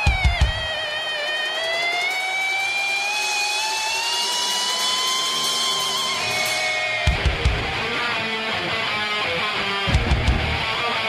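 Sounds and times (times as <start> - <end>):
electric guitar feedback note: 3.6 - 11.0.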